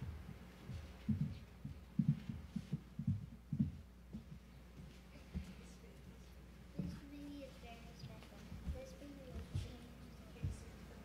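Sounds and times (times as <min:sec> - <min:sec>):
soft low thumps: 0:00.0 - 0:06.0, 0:06.7 - 0:11.0.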